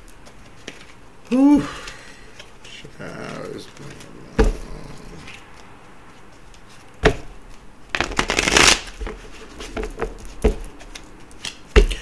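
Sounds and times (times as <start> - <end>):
cards fluttering while shuffled: 0.0 - 11.8
cards snapping: 8.0 - 9.0, 10.1 - 12.0.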